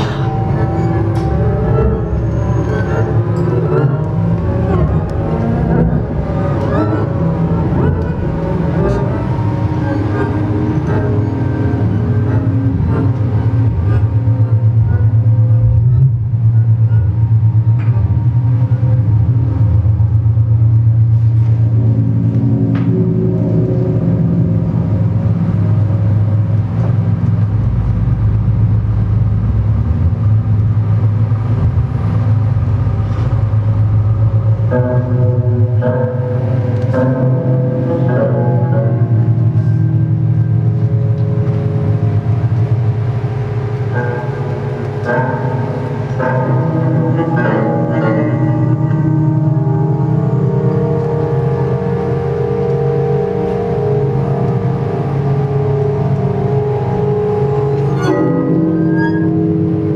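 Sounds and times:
deep rumble: 0.0 - 59.9
low synthesizer drone: 0.0 - 59.9.

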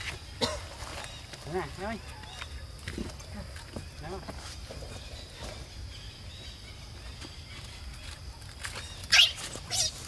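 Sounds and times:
macaque screeching: 9.1 - 10.0.

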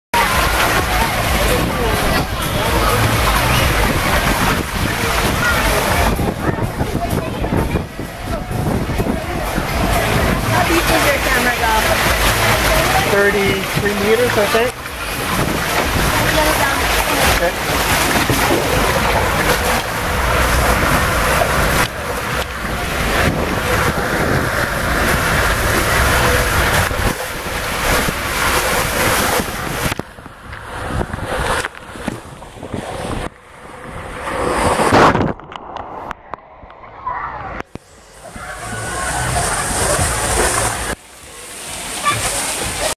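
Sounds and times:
wind on microphone: 0.2 - 41.0
water rushing in slide tube: 0.2 - 42.9.

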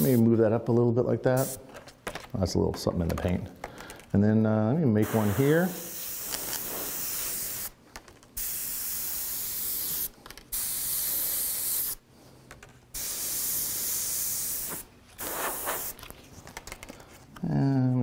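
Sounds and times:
airbrush spraying hiss: 0.0 - 0.2, 1.4 - 1.6, 5.0 - 7.8, 8.4 - 12.0, 12.9 - 16.0.

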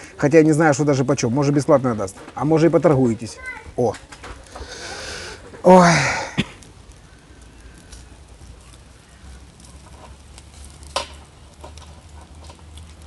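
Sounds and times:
skewers sizzling over charcoal: 0.0 - 13.0
small crackles: 0.0 - 13.0.

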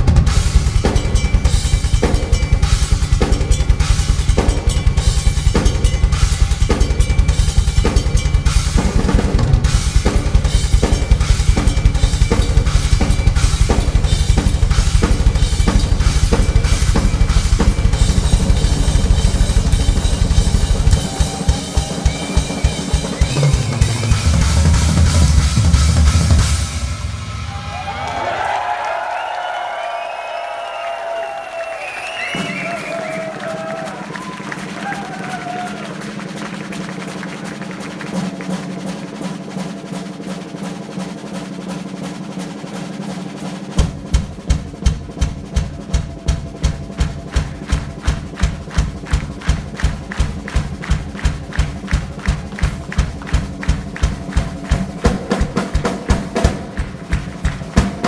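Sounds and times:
bass drum and tom hits: 0.0 - 27.8, 43.8 - 58.0
cymbal and snare strokes: 0.0 - 27.8
crowd cheering: 20.4 - 24.6, 26.9 - 38.7, 47.3 - 58.0.

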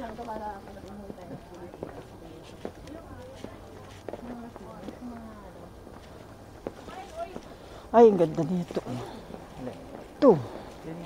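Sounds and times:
footsteps on pavement: 0.0 - 11.0
people talking: 0.0 - 11.0.

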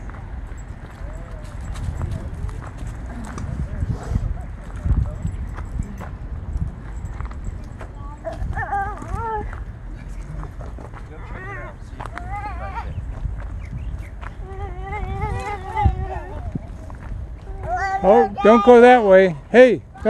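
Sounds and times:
young child's voice: 14.4 - 18.8.

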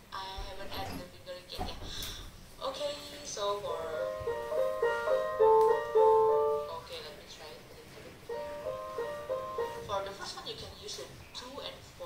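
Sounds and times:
piano notes: 3.8 - 7.1, 8.2 - 10.3.

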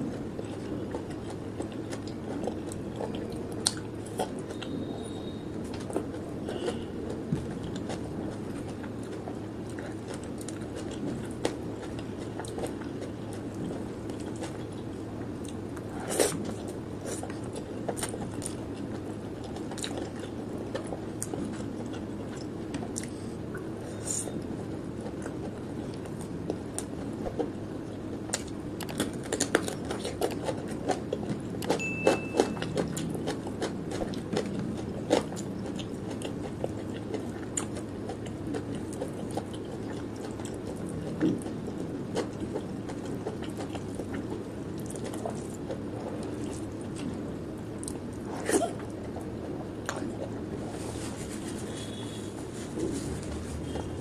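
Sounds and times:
chewing food: 0.0 - 54.0.

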